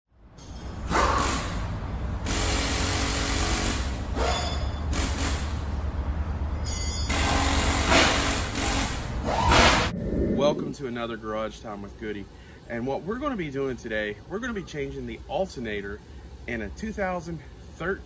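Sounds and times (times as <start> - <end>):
steady low hum: 0.2 - 18.0
power tool running in bursts: 2.2 - 4.0, 7.1 - 9.1.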